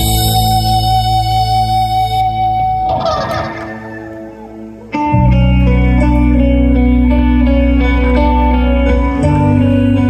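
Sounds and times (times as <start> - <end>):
live rock band music: 0.0 - 10.0.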